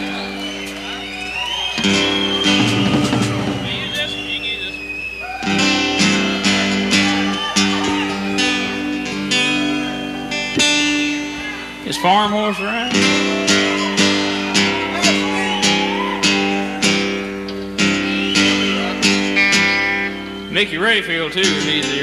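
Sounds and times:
acoustic guitar strumming: 0:00.0 - 0:22.0
live band music: 0:01.8 - 0:22.0.

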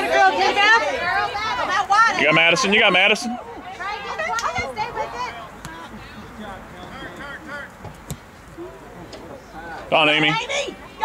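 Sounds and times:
distant voices chattering: 0:00.0 - 0:11.0.

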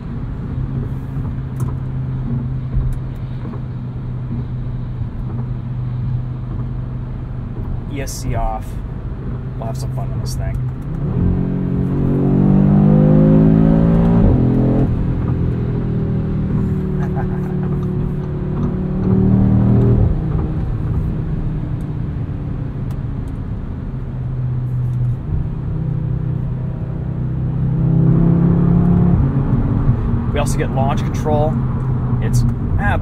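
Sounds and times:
car engine inside cabin: 0:00.0 - 0:33.0
road noise: 0:00.0 - 0:33.0.

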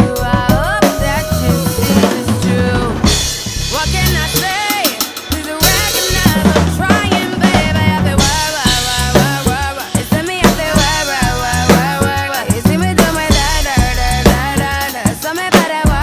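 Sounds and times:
acoustic drum kit groove: 0:00.0 - 0:16.0
person singing: 0:00.0 - 0:16.0
pop backing track: 0:00.0 - 0:16.0.

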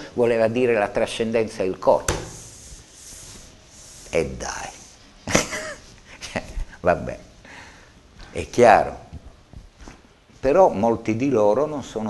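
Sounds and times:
soft rustling: 0:08.0 - 0:10.6.

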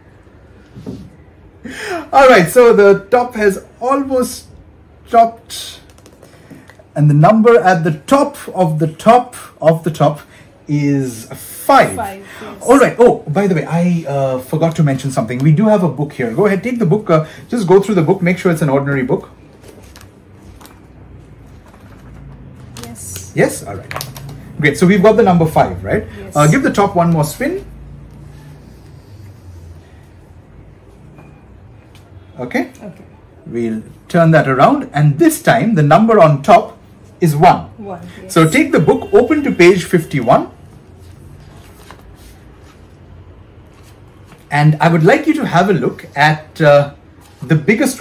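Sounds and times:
book pages flicking: 0:05.8 - 0:06.8
book pages rustling: 0:05.8 - 0:06.8, 0:18.9 - 0:24.5, 0:40.8 - 0:44.5.

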